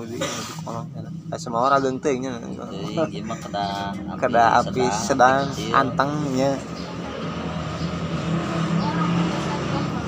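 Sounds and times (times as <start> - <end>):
faint voices: 0.0 - 10.0
vehicle engine humming: 0.0 - 10.0.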